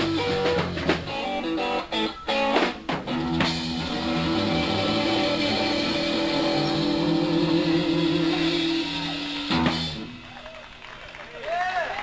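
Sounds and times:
electric guitar with vibrato: 0:00.0 - 0:10.4
bass: 0:00.0 - 0:12.0
drums: 0:00.0 - 0:12.0.

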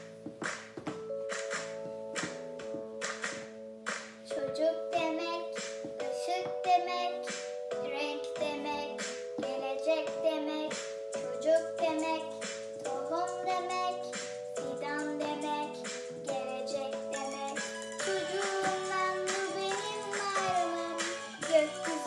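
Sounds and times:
backing track of held chords: 0:00.0 - 0:22.0
girl singing: 0:04.2 - 0:22.0.

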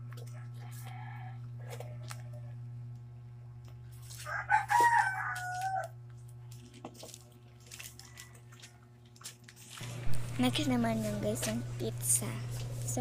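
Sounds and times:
steady low hum: 0:00.0 - 0:13.0
rooster crowing: 0:00.6 - 0:02.0, 0:04.1 - 0:06.0.

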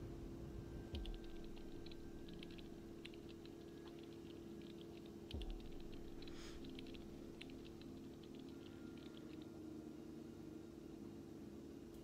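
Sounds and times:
steady low hum: 0:00.0 - 0:12.0
typing clicks: 0:01.0 - 0:09.5.

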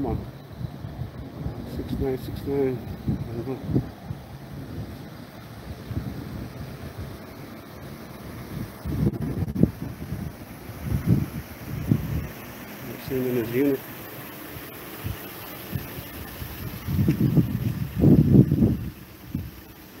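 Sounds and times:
wind noise on microphone: 0:00.0 - 0:13.2, 0:14.6 - 0:20.0.

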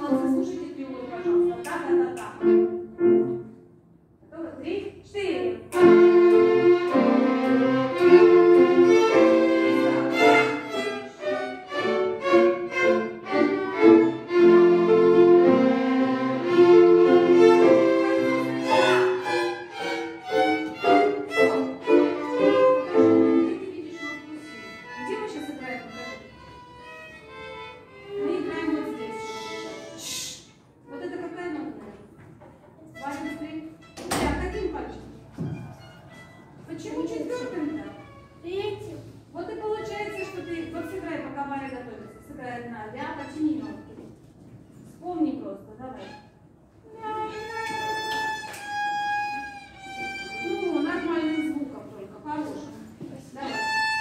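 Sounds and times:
teacher speaking: 0:00.0 - 0:02.8, 0:22.4 - 0:26.5, 0:28.0 - 0:35.3, 0:36.3 - 0:44.2, 0:50.0 - 0:53.8
violin ensemble playing: 0:00.3 - 0:03.5, 0:05.7 - 0:30.2, 0:32.9 - 0:38.6, 0:46.0 - 0:51.9, 0:53.4 - 0:54.0.

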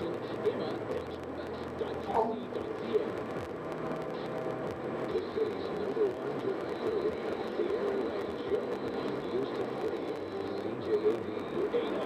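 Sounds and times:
road and tyre noise in car: 0:00.0 - 0:12.0.

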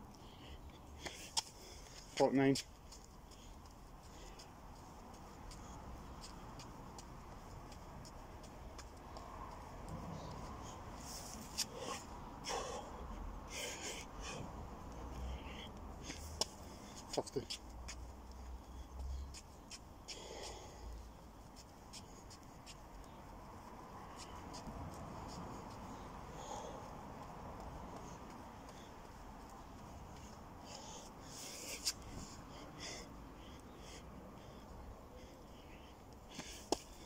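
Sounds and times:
man breathing heavily: 0:00.0 - 0:37.0.

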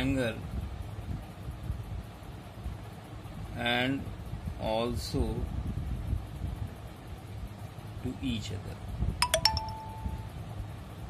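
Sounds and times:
bell-like chime: 0:09.2 - 0:10.3.

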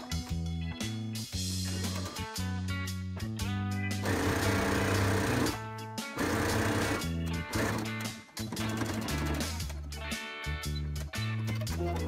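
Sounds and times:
guitar music with bass line: 0:00.0 - 0:12.0
electric sewing machine stitching: 0:04.0 - 0:05.6, 0:06.2 - 0:08.0.

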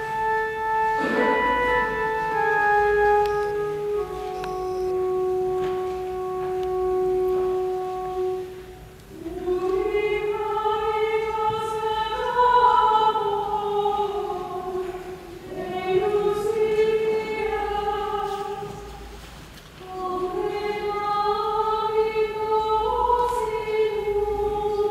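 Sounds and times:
church organ note: 0:00.0 - 0:10.0
voices singing long notes: 0:00.0 - 0:19.1.

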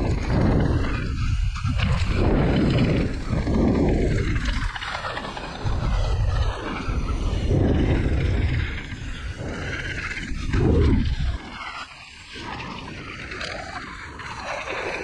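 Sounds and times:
tyres rolling on dirt: 0:00.0 - 0:15.0
wind rushing over microphone: 0:00.0 - 0:15.0.

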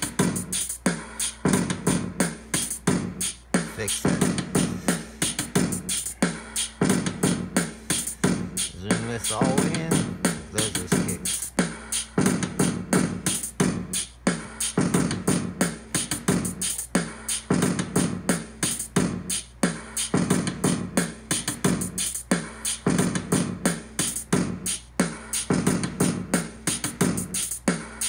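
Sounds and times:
hip-hop drum beat: 0:00.0 - 0:28.0.

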